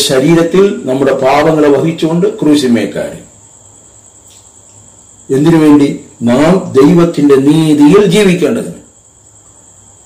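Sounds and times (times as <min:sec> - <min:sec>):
man speaking: 0:00.0 - 0:03.3, 0:05.3 - 0:08.9
steady high-pitched whine: 0:00.0 - 0:10.0.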